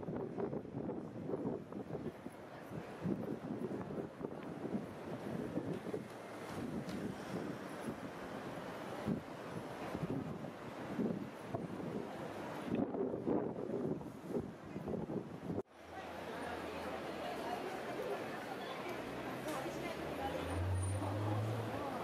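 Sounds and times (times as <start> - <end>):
wind buffeting microphone: 0.0 - 15.7
road traffic: 1.9 - 13.0, 15.4 - 22.0.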